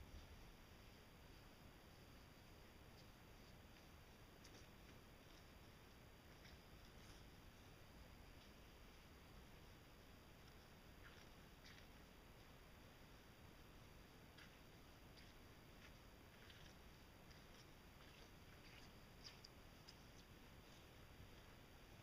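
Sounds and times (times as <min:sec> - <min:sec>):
faint high-pitched ticks: 0:00.0 - 0:22.0.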